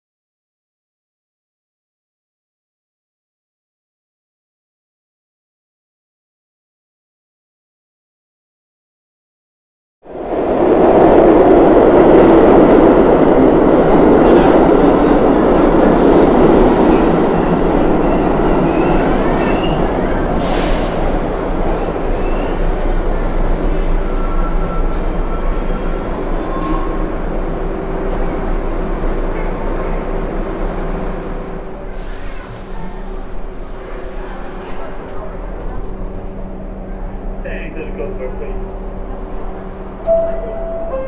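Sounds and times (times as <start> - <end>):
train wheels rumbling on rails: 10.1 - 41.0.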